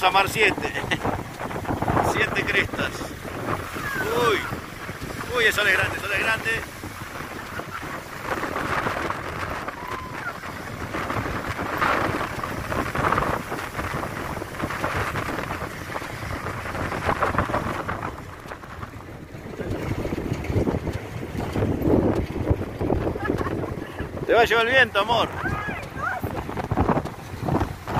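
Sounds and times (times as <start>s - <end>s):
surf breaking on rocks: 0.0s - 27.9s
wind buffeting microphone: 0.0s - 27.9s.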